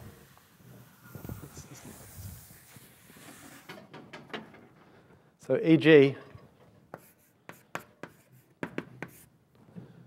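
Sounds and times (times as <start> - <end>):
chalk tapping and scratching: 6.9 - 9.3.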